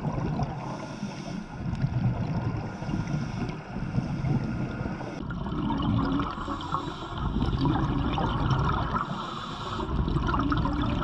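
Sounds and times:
gurgling bubbles: 0.0 - 0.8, 1.6 - 3.5, 4.1 - 11.0
underwater water rumble: 0.0 - 11.0.

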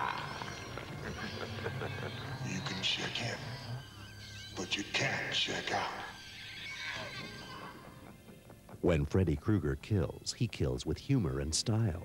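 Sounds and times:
film music and sound effects: 0.0 - 12.0
man speaking: 2.4 - 3.6, 4.6 - 6.2, 8.8 - 12.0.

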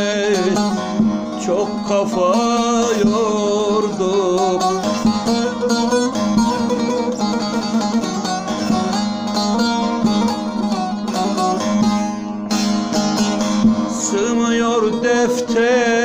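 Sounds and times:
long-necked lute plucked: 0.0 - 16.0.

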